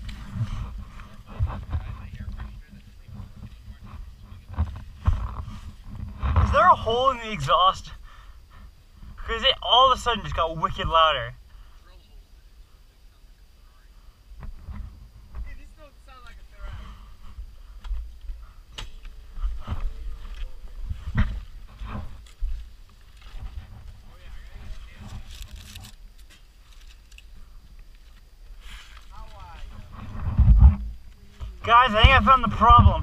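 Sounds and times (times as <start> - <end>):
faint voices: 0.0 - 8.1
wind buffeting microphone: 29.6 - 33.0.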